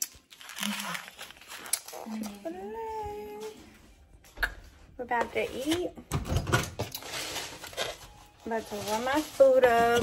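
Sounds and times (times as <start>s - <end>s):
close rustling: 7.0s - 10.0s.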